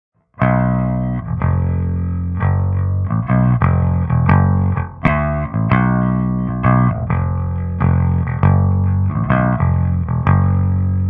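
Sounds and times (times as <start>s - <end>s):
distorted electric bass notes: 0.4s - 11.0s.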